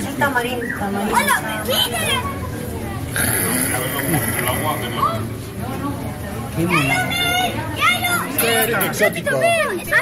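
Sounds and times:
children and adults talking: 0.0 - 10.0.

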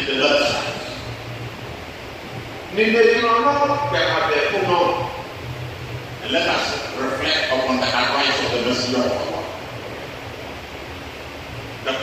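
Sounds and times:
man speaking amplified: 0.0 - 1.1, 2.7 - 5.4, 6.2 - 9.7
faint low hum: 0.0 - 12.0
steady background hiss: 0.0 - 12.0.

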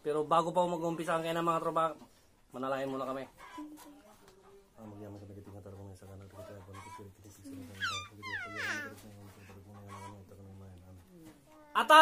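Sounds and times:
chicken squawking: 7.6 - 9.0.

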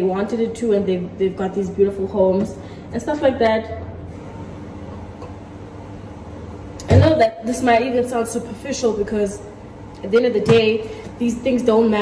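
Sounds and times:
washing machine humming: 0.0 - 12.0.

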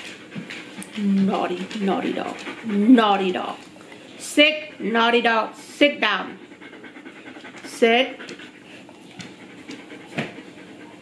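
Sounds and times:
dog panting: 0.0 - 11.0.

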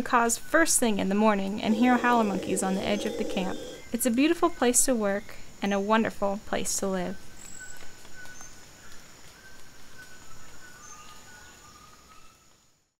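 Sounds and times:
high-pitched insect drone: 1.6 - 3.9.

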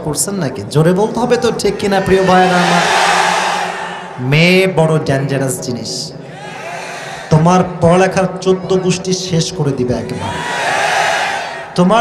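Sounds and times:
man's amplified voice: 0.0 - 3.0, 4.2 - 6.2, 7.3 - 10.4, 11.8 - 12.0
crowd shouting in unison: 1.4 - 4.2, 6.3 - 7.3, 10.2 - 11.8.

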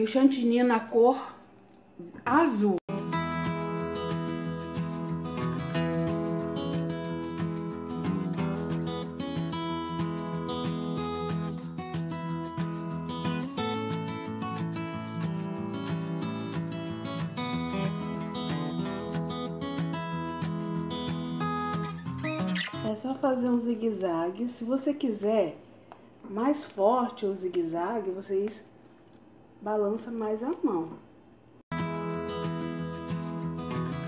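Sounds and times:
acoustic guitar music: 2.9 - 23.2, 31.7 - 34.0.

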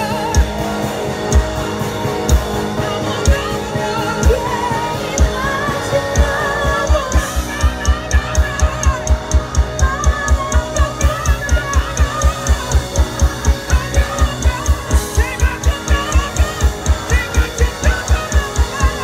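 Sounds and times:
electric guitar: 0.0 - 19.0
fast kick-drum beat: 0.0 - 19.0.

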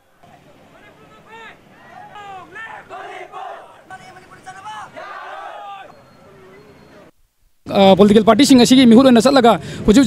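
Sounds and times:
crowd shouting together: 0.8 - 6.0.

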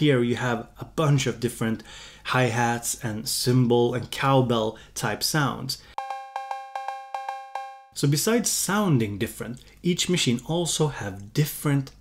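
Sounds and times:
electronic cowbell pings: 6.0 - 8.0.

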